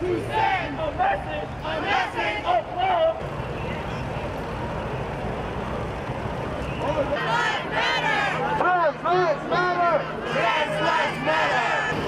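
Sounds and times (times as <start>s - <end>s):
motorcycle engines rumbling: 0.0s - 8.6s
street noise: 0.0s - 12.0s.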